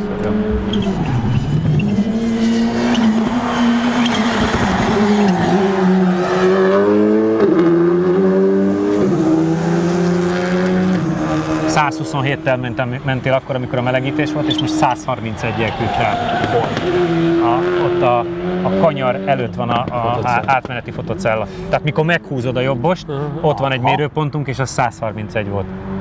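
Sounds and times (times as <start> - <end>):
racing car engine: 0.0 - 26.0
tyre noise: 14.1 - 17.8.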